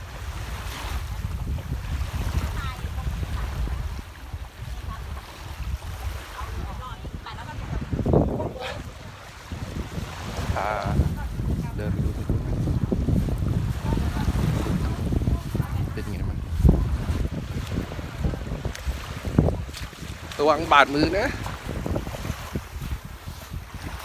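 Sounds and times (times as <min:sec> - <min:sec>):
small waves washing ashore: 0:00.0 - 0:24.0
wind buffeting microphone: 0:00.0 - 0:24.0.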